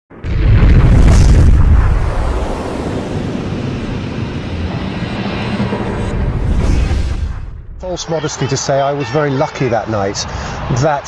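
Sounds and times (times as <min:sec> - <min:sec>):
deep rumble: 0:00.1 - 0:08.0
explosion boom: 0:00.1 - 0:08.0.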